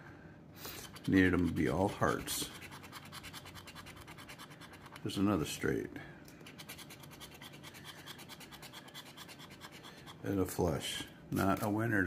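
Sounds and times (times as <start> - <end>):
coin scraping scratch card: 0.7 - 5.1, 6.4 - 10.2.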